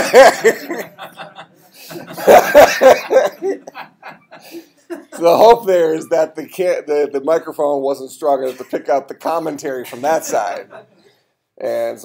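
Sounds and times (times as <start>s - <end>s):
loud laughter: 0.0s - 5.2s.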